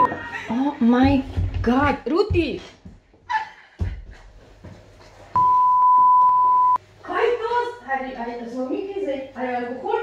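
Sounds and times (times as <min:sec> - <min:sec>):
censor bleep: 0:05.4 - 0:06.8.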